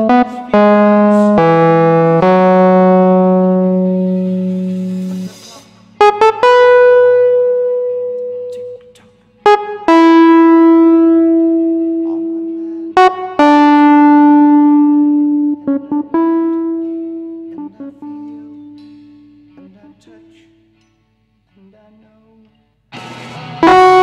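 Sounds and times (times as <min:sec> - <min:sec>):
electric piano single notes: 0:00.0 - 0:05.4, 0:06.0 - 0:19.6, 0:23.6 - 0:24.0.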